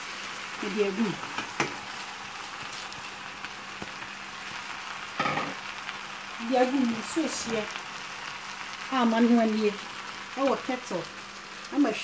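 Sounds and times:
rice sizzling in a pot: 0.0 - 12.0.

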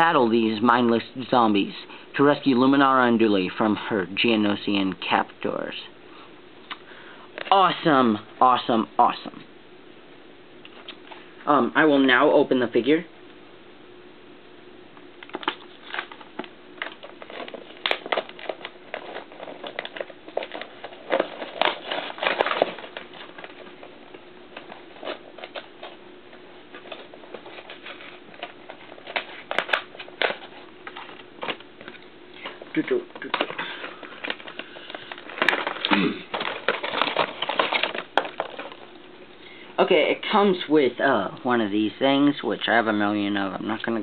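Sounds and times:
packaging crackling and clicking: 15.2 - 26.0, 26.7 - 39.0.

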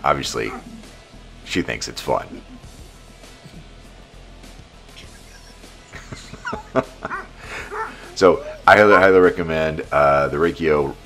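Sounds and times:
dog yipping and yelping: 0.5 - 0.8, 7.0 - 9.0.

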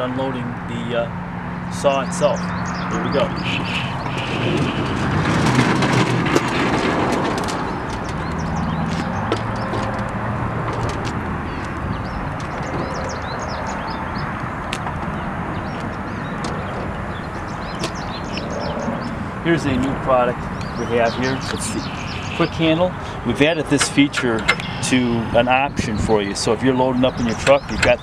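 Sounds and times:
birds chirping: 0.0 - 6.6, 7.4 - 28.0
steady low rumble: 1.7 - 28.0
metal clanks and rattles: 4.1 - 11.8.

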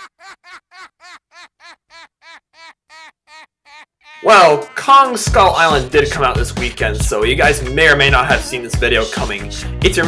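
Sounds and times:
rapid high-pitched laugh: 0.0 - 4.8.

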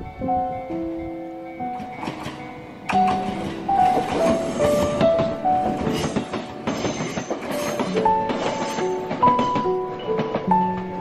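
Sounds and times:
electric train rattling past: 0.0 - 11.0
gentle piano music: 0.0 - 11.0.

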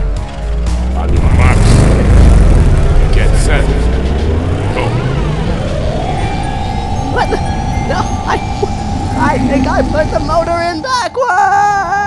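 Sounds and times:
cartoon racing engines: 1.0 - 12.0.

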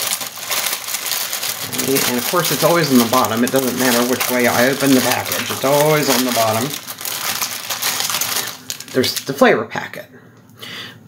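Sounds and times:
dry noodles crunching: 0.0 - 9.4
plastic wrapper crinkling: 0.0 - 9.5.

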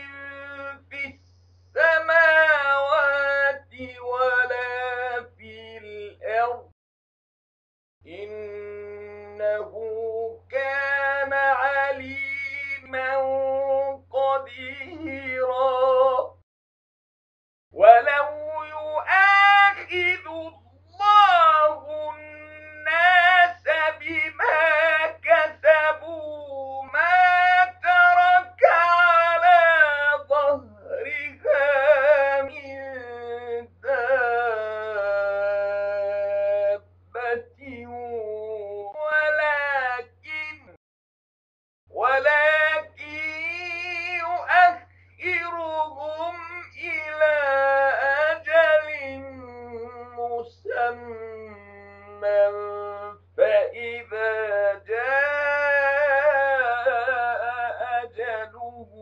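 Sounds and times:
faint low hum: 0.0 - 6.6, 8.1 - 16.3, 17.8 - 40.7, 41.9 - 59.0
man chanting melodically: 0.0 - 6.7, 8.1 - 16.4, 17.7 - 40.8, 41.9 - 59.0.

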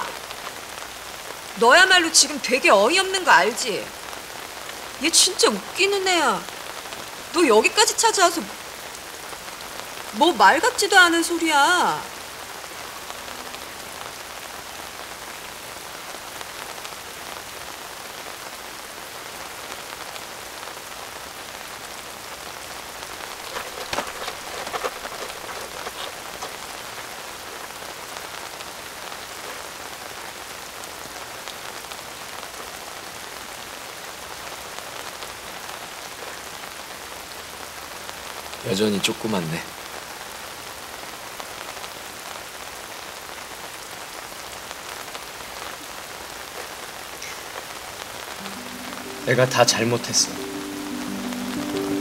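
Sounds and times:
steady rain falling: 0.0 - 52.0.

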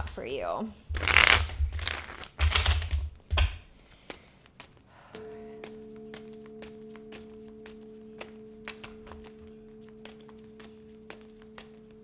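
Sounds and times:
cards riffle-shuffling: 1.0 - 3.1, 3.7 - 4.9.

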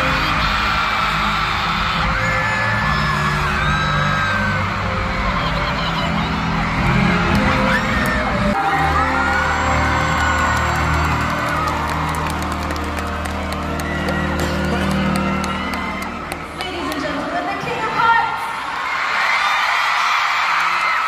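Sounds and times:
crowd screaming and cheering: 0.0 - 21.0.

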